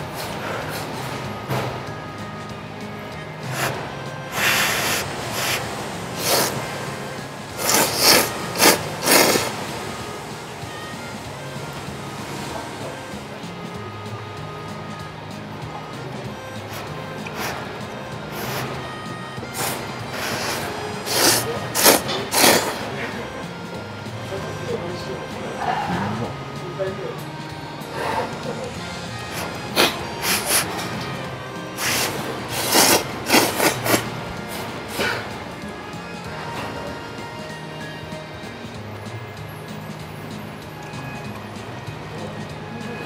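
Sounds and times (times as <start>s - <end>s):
background music: 0.0s - 43.0s
loud noodle slurping: 3.5s - 6.8s, 7.4s - 9.9s, 18.4s - 18.7s, 19.5s - 22.9s, 29.3s - 30.8s, 31.8s - 35.3s.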